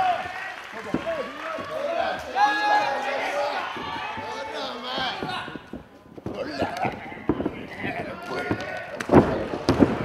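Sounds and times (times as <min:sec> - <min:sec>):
thuds on wrestling ring canvas: 0:08.3 - 0:10.0.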